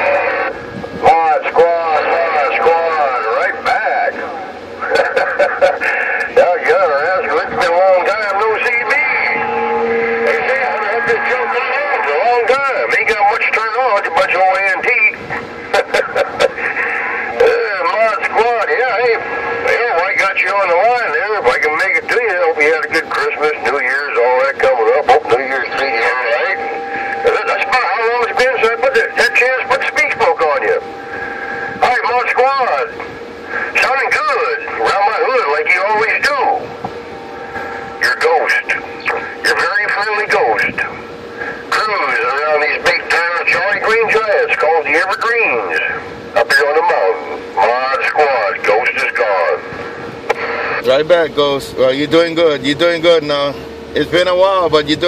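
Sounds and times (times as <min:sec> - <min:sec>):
garbled voices over radio: 0:00.0 - 0:36.7, 0:38.0 - 0:51.5
short steady tone: 0:08.6 - 0:11.8, 0:25.6 - 0:33.5, 0:36.4 - 0:39.5.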